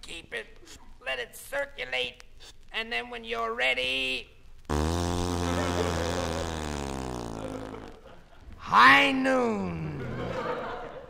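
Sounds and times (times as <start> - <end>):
man groaning: 8.6 - 10.3.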